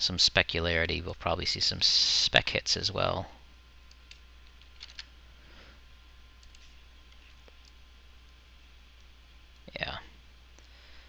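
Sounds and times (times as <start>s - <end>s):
low electrical hum: 0.0s - 11.0s
computer mouse clicks: 6.4s - 7.8s.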